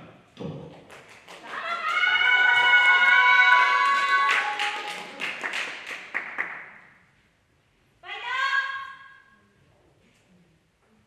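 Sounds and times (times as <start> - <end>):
audience clapping and cheering: 0.8 - 6.9.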